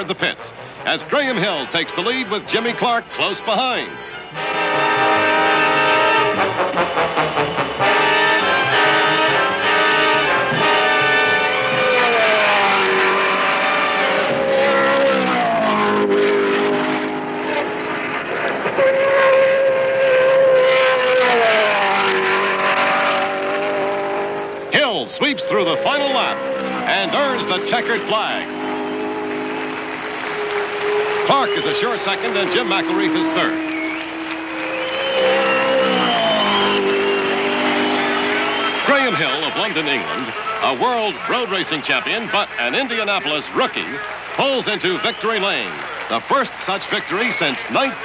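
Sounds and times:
race car engines passing: 0:00.0 - 0:48.0.

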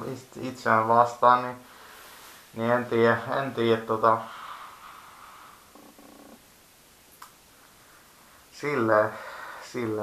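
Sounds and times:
man humming creakily: 0:05.6 - 0:06.4.

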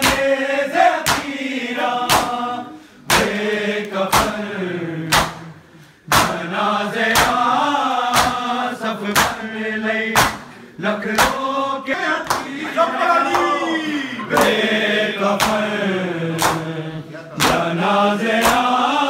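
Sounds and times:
men chanting in unison: 0:00.0 - 0:19.0
hands striking chests: 0:06.1 - 0:06.4.

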